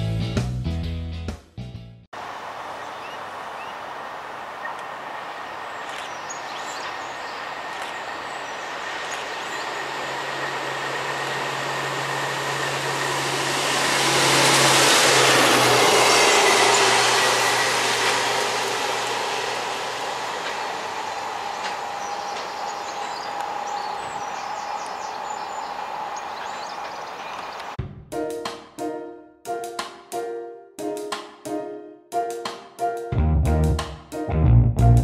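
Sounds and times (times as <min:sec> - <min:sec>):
wheels on rails: 0:03.9 - 0:27.8
diesel engine drone: 0:04.2 - 0:27.8.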